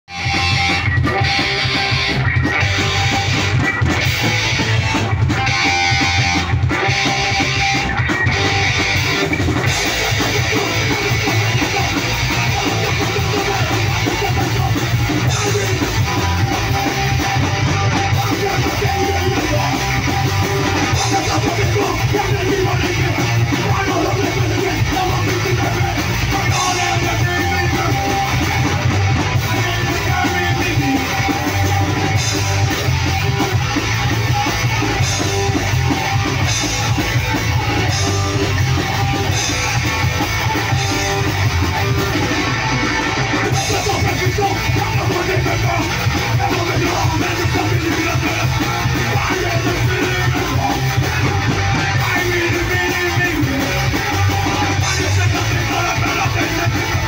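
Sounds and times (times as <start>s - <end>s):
punk band playing: 0.0s - 57.0s.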